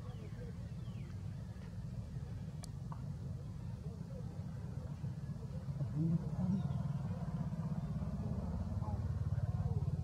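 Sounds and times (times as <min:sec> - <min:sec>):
faint voices: 0:00.0 - 0:10.0
low engine rumble: 0:00.0 - 0:10.0.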